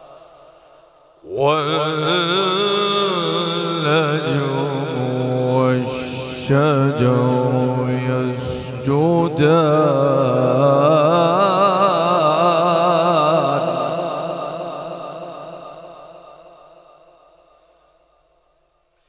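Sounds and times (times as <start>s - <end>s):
echo: 0.0s - 19.0s
man chanting through a microphone: 1.2s - 16.7s.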